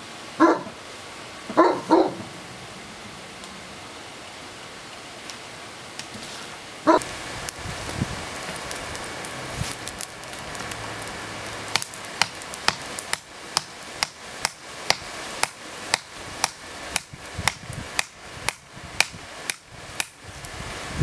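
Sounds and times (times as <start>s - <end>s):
hammer striking hot metal: 11.7s - 20.2s.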